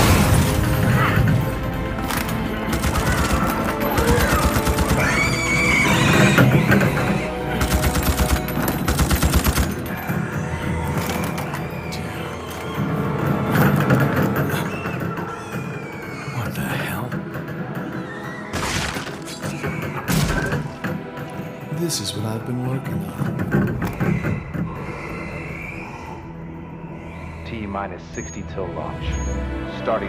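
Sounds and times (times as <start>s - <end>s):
film music score: 0.0s - 30.0s
high screeching creature cries: 3.7s - 7.3s, 9.9s - 13.2s, 14.5s - 17.1s.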